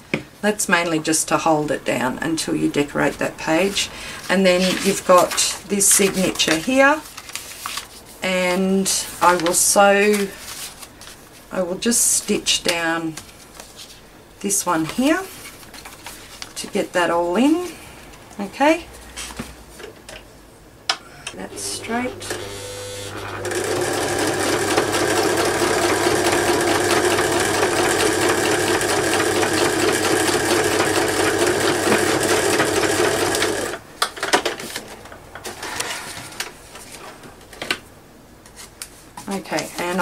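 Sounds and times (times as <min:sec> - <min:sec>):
sewing machine stitching: 0:21.5 - 0:33.8.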